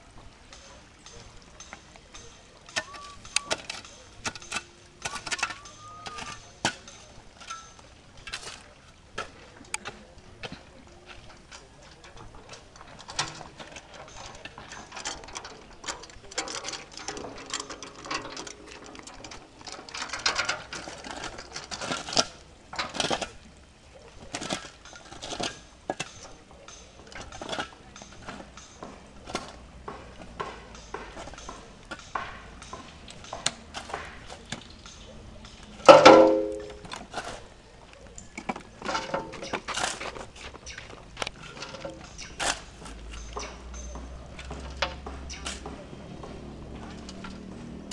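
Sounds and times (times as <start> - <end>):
clanks against steel wheelbarrow: 0.0 - 47.9
shovels scraping soil and stones: 0.6 - 47.9.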